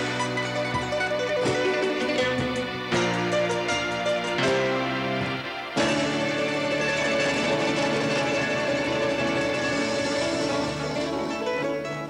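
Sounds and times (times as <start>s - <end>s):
drums and percussion: 0.0s - 12.0s
keyboards: 0.0s - 12.0s
plucked string lead: 0.0s - 12.0s.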